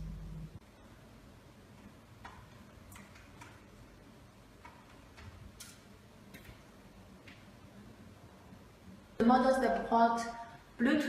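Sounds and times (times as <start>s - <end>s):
faint keyboard keystrokes: 2.2s - 3.8s.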